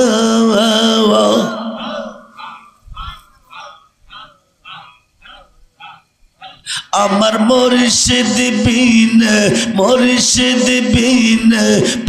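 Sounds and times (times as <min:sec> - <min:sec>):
short quiet vocal bursts: 0:02.4 - 0:06.9.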